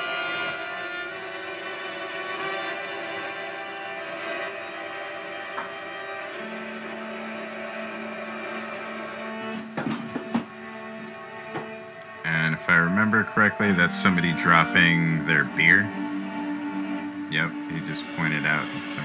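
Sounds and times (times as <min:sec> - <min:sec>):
viola with delay and reverb: 0:00.0 - 0:19.0.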